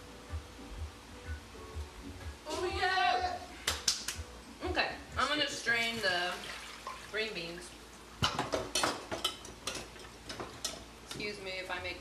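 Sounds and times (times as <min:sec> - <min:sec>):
utensil stirring food in pan: 0:08.4 - 0:11.2.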